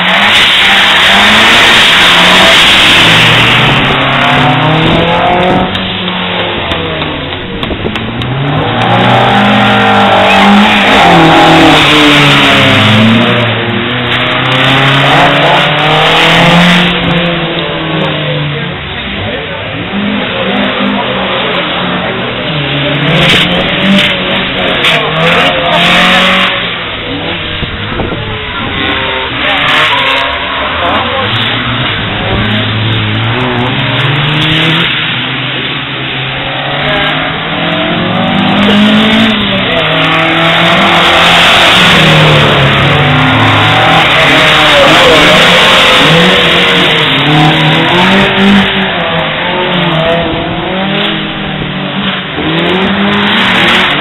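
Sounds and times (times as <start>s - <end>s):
car engines revving hard: 0.0s - 54.0s.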